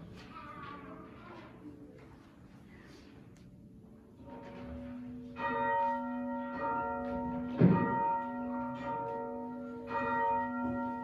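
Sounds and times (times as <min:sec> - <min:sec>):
church bell ringing: 0:04.2 - 0:11.0.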